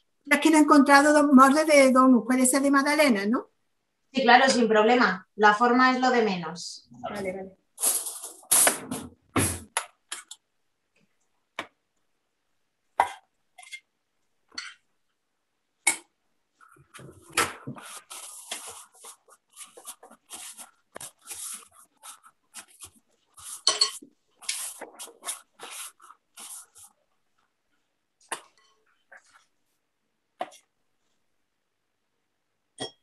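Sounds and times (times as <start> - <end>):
metal spoon scraping glass bowl: 23.5 - 24.6.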